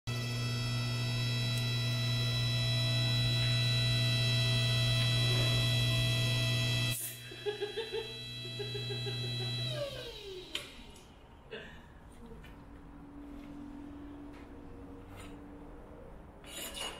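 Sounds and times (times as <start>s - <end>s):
hydraulic press motor hum: 0.1s - 11.3s.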